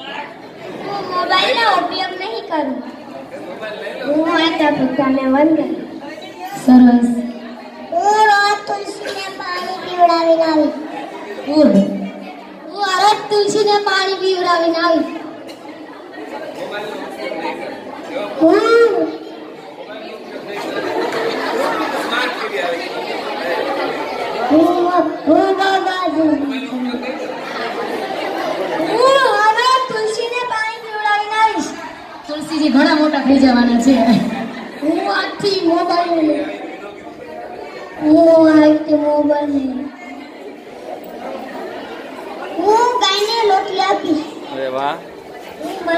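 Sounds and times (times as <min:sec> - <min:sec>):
children chattering: 0:00.0 - 0:45.9.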